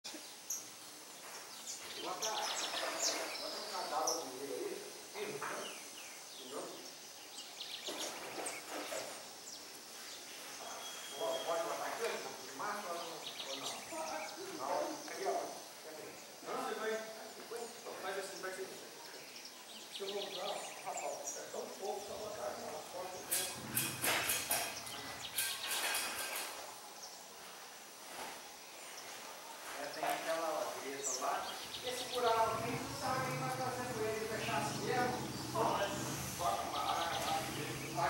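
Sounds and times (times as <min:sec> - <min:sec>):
outdoor background hiss: 0:00.0 - 0:38.0
small birds chirping: 0:00.0 - 0:38.0
people talking: 0:02.0 - 0:05.8, 0:10.6 - 0:19.2, 0:20.0 - 0:25.2, 0:29.7 - 0:38.0
high bird chirps: 0:10.4 - 0:11.8.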